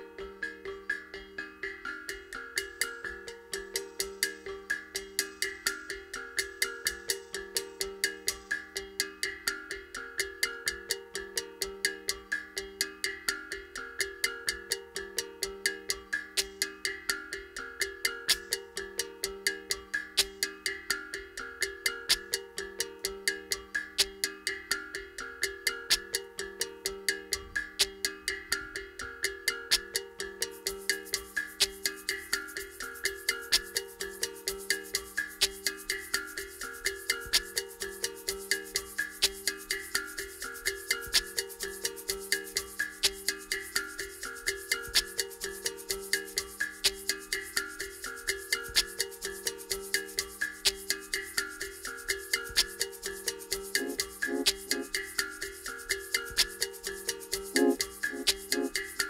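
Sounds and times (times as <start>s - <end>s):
shaker: 0.0s - 59.0s
bright ringing percussion strikes: 52.4s - 59.0s.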